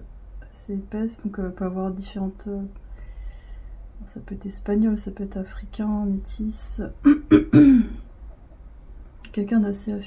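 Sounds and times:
woman coughing: 0:07.0 - 0:08.0.

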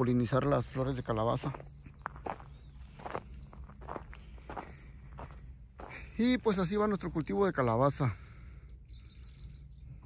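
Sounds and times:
footsteps through grass: 0:00.4 - 0:07.5.

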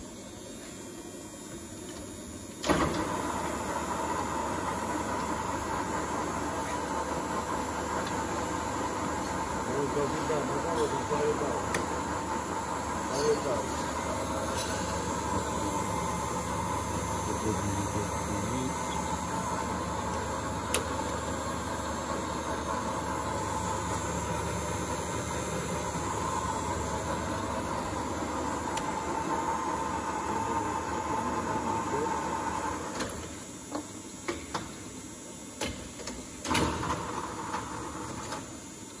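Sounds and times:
lathe running: 0:02.7 - 0:33.0.

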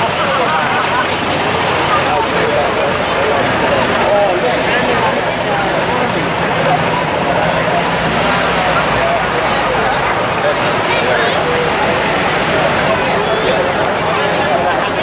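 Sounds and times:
crowd chattering: 0:00.0 - 0:15.0
vehicle engines running: 0:00.0 - 0:15.0.

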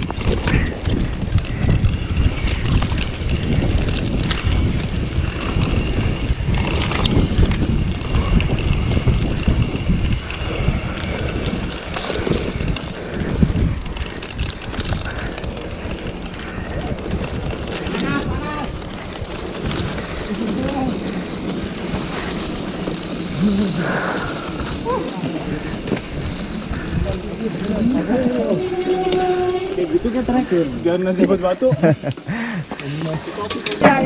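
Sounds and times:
bike rattling over bumps: 0:00.0 - 0:34.0
wind buffeting microphone: 0:00.0 - 0:34.0.

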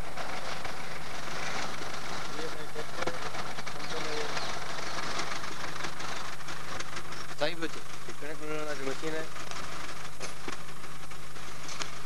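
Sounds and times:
low even hum: 0:00.0 - 0:12.0
steady hiss: 0:00.0 - 0:12.0.

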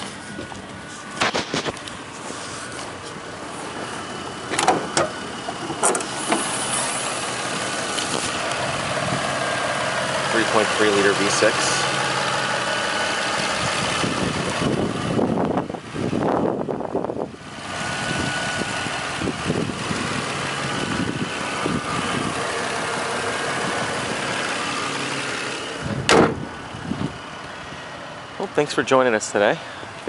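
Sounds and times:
car engine idling: 0:00.0 - 0:30.0
car hood slamming: 0:04.5 - 0:06.6, 0:25.9 - 0:26.5.

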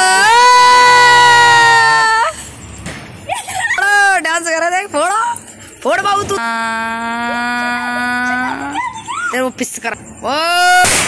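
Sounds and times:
dog howling and yelping: 0:08.2 - 0:09.5.

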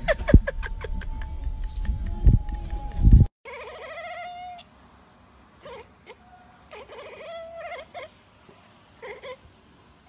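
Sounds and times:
loud low rumble: 0:00.0 - 0:03.3
cat quavering call: 0:03.5 - 0:04.7.

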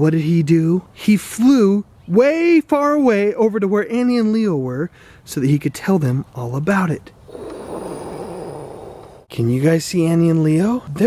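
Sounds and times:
mouth-made whooshing noise: 0:07.2 - 0:09.3.

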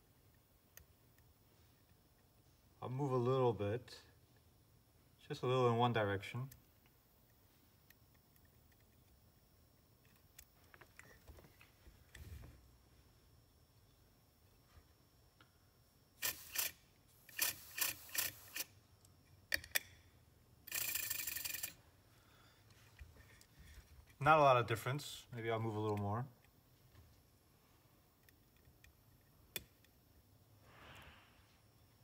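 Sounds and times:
air hiss: 0:16.2 - 0:18.7, 0:30.6 - 0:31.6.

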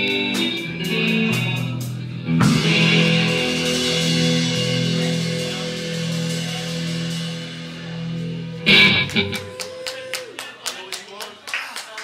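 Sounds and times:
audience applauding: 0:08.6 - 0:12.0.

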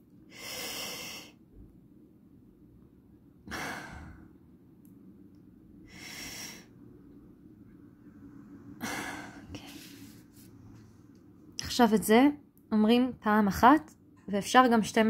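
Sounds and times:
woman breathing slowly: 0:00.3 - 0:01.5, 0:03.5 - 0:04.5, 0:05.8 - 0:07.0, 0:08.5 - 0:11.0.

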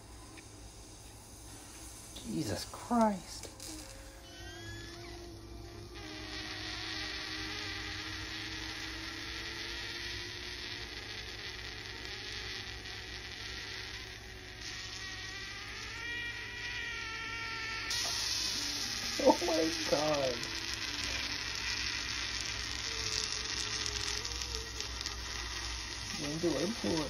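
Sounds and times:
egg cooker hissing: 0:00.0 - 0:27.0
faint constant whine: 0:00.0 - 0:27.0
high squealing whistle: 0:03.5 - 0:27.0.

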